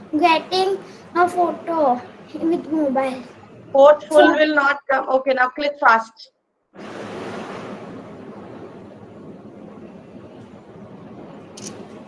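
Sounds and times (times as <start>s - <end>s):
open microphone rushing noise: 0.0s - 4.6s, 6.8s - 12.0s.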